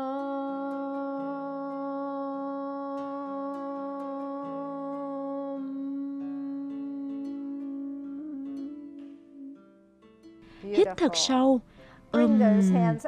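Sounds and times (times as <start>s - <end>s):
woman chanting om: 0.0s - 9.6s, 12.2s - 13.0s.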